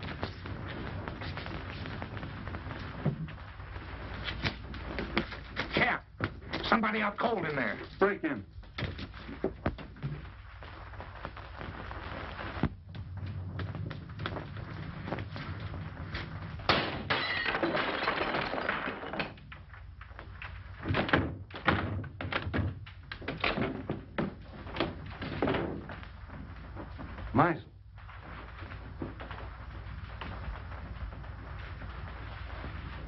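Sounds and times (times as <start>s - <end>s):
footsteps: 0.0s - 16.7s, 19.5s - 33.0s
film soundtrack hiss and hum: 0.0s - 33.0s
crash of breaking: 16.6s - 19.5s.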